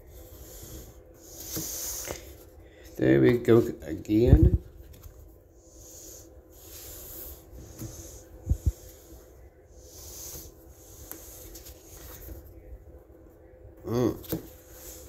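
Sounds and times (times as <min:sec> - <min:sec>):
person breathing: 0:00.0 - 0:03.0, 0:05.6 - 0:12.4.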